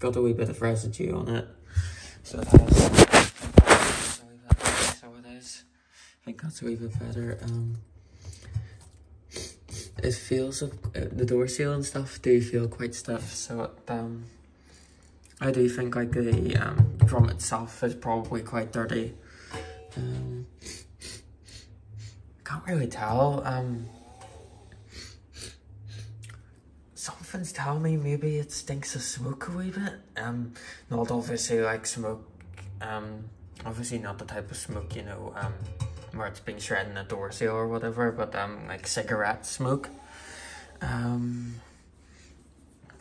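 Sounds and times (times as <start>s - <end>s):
handling noise: 2.4s - 5.0s
person sniffing: 2.8s - 5.0s.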